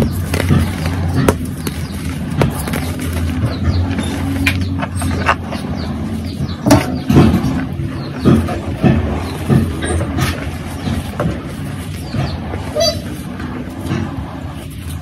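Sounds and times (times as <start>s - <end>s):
traffic noise: 0.0s - 15.0s
vehicle horn toot: 12.8s - 13.1s.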